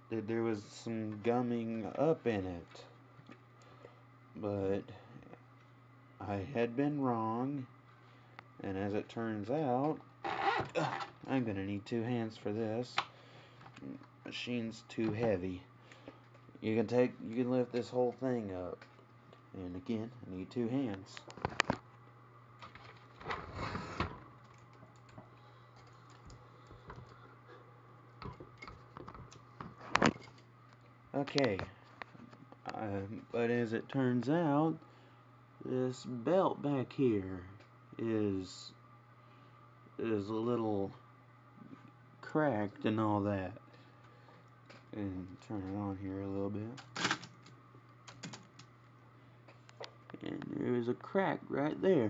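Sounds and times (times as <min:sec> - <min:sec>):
steady low hum: 0:00.0 - 0:52.0
typewriter mechanism clack: 0:46.8 - 0:47.3
typewriter clicks and clatter: 0:48.1 - 0:48.6.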